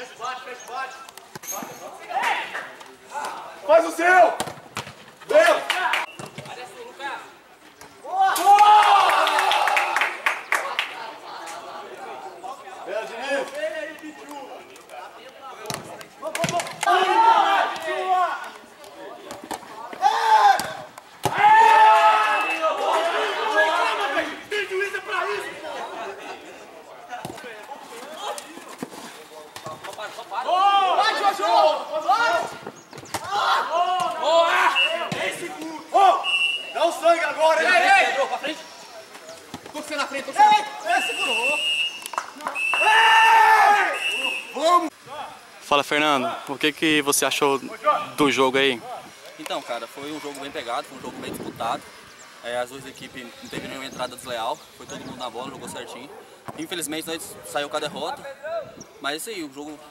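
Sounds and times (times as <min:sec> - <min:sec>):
players shouting: 0:01.6 - 0:04.5, 0:05.2 - 0:07.4, 0:08.0 - 0:28.9, 0:29.5 - 0:38.7, 0:39.7 - 0:46.7
long held shout: 0:08.1 - 0:10.1, 0:16.8 - 0:18.3, 0:21.3 - 0:24.2, 0:30.4 - 0:32.4, 0:42.6 - 0:44.9
men shouting: 0:16.8 - 0:18.4, 0:20.0 - 0:26.1, 0:30.4 - 0:32.5, 0:33.2 - 0:38.4, 0:42.8 - 0:45.4
referee's whistle blasts: 0:22.2 - 0:22.8, 0:34.6 - 0:35.1, 0:36.2 - 0:36.9, 0:40.8 - 0:43.0, 0:43.8 - 0:44.7.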